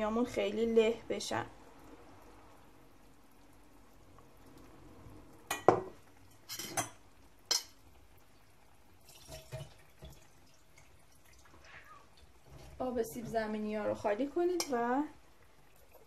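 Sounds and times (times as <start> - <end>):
utensils and dishes clinking: 5.5 - 7.8.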